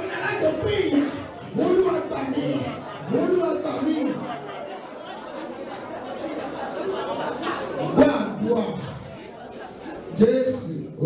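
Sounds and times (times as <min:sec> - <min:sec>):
man preaching into microphone: 0:00.0 - 0:04.6, 0:07.8 - 0:09.1, 0:10.1 - 0:11.0.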